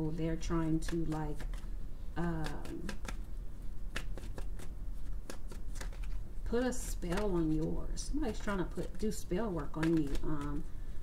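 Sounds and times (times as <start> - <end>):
cards being shuffled: 0.6 - 10.7.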